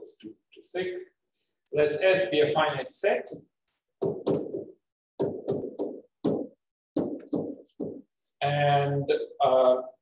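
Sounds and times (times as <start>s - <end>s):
stylus tapping on tablet screen: 4.0s - 8.1s.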